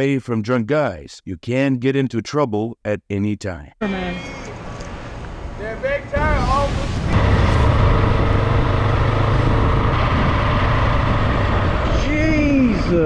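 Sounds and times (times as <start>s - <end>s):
microphone wind noise: 6.2s - 13.0s
motorcycle engine cruising: 7.2s - 13.0s.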